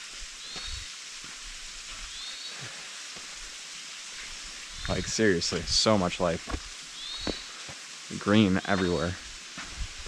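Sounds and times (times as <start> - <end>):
footsteps on dirt trail: 0.0 - 3.5, 4.2 - 7.8, 9.5 - 10.0
creek and small waterfall rushing: 0.0 - 10.0
bird chirping: 7.0 - 7.5.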